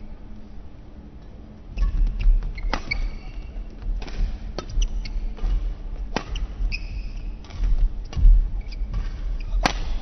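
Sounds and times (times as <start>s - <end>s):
badminton racket hitting shuttlecock: 4.0s - 6.7s, 8.9s - 10.0s.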